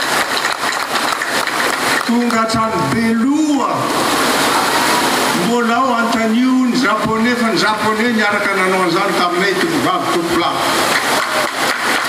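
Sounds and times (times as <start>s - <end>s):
loud broadband hiss: 0.0s - 12.0s
person speaking: 2.1s - 3.9s, 5.3s - 10.8s.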